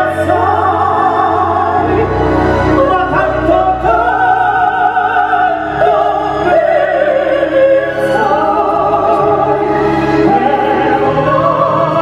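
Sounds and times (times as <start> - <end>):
instrumental accompaniment: 0.0 - 12.0
operatic singing: 0.0 - 12.0.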